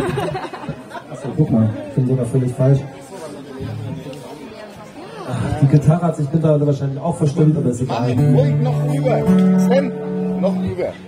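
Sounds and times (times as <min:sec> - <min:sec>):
murmur of background chatter: 0:00.0 - 0:11.0.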